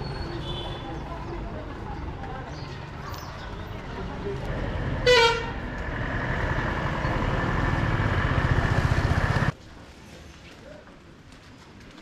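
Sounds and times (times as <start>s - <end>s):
vehicle horn toot: 5.0s - 5.6s
vehicle engine running: 5.7s - 9.5s.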